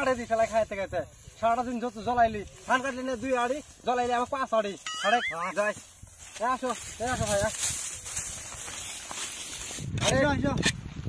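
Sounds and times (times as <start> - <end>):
man speaking: 0.0 - 5.8.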